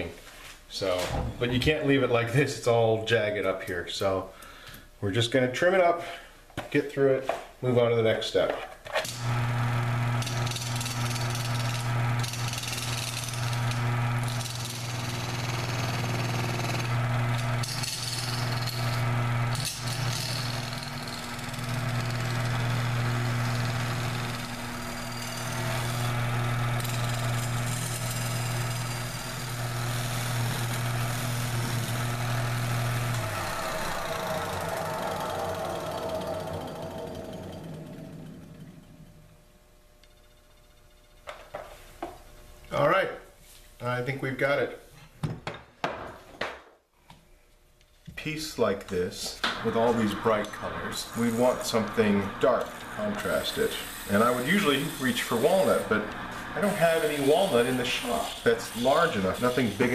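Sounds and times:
lathe motor hum: 9.1s - 39.4s, 49.4s - 59.9s
turning tool scraping resin: 9.2s - 38.1s, 49.6s - 59.9s.

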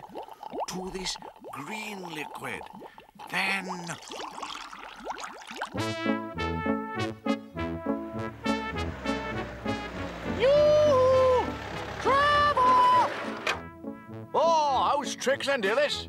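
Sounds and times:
brass cartoon music: 5.8s - 16.0s.

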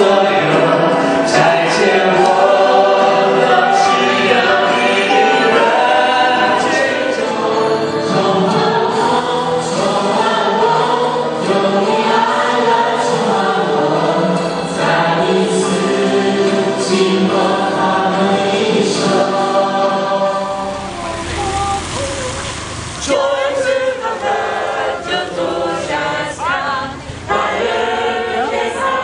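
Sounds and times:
choir singing worship song: 0.0s - 29.0s.

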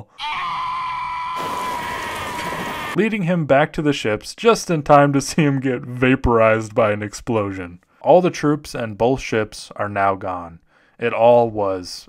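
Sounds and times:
person screaming in pain: 0.0s - 3.0s.

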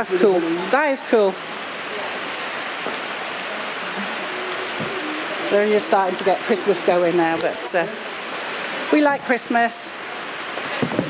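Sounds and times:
heavy rain on a roof: 0.0s - 11.0s.

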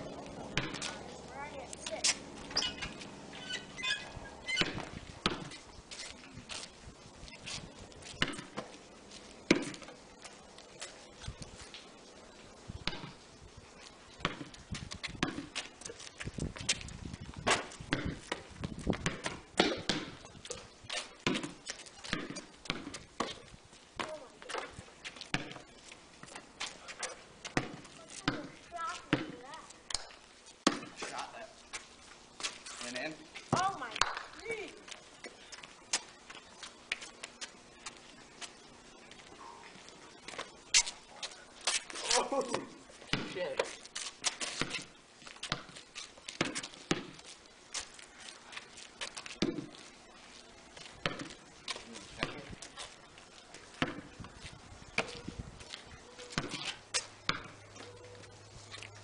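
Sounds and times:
basketball bouncing on concrete: 0.1s - 5.6s, 7.5s - 8.8s, 9.4s - 10.0s, 12.8s - 13.2s, 14.2s - 31.4s, 33.4s - 34.4s, 41.6s - 47.9s, 49.0s - 49.8s, 50.8s - 52.8s, 53.6s - 55.2s, 56.3s - 57.8s.

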